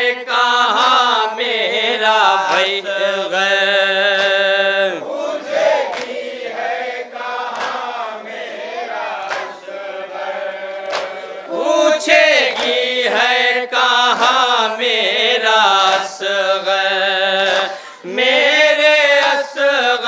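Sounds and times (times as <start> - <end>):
men chanting a lament: 0.0 - 20.0
hands slapping chests: 0.7 - 1.2, 2.4 - 3.0, 4.0 - 4.7, 5.4 - 6.7, 7.3 - 8.2, 8.8 - 9.8, 10.8 - 13.0, 14.0 - 14.6, 15.8 - 16.4, 17.4 - 18.0, 19.1 - 19.6.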